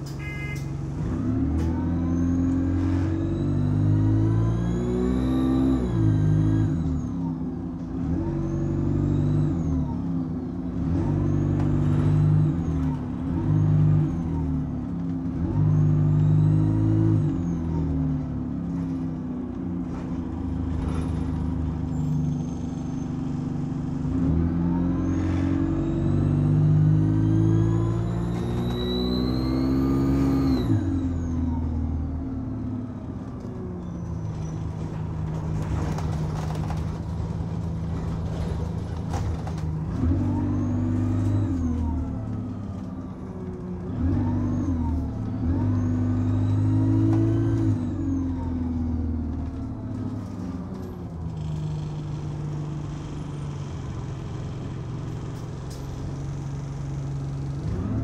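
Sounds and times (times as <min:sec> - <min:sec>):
bus diesel engine drone: 0:00.0 - 0:58.0.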